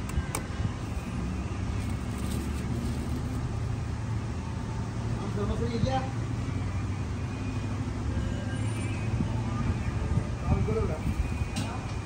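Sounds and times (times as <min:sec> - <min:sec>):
motor vehicles rumbling: 0:00.0 - 0:12.0.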